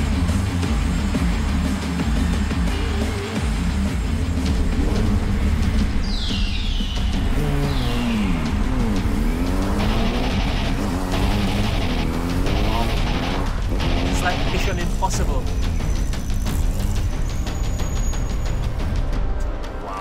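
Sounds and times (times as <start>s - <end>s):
motorcycle engine revving: 0.0s - 18.9s
film score music with heavy bass: 0.0s - 20.0s.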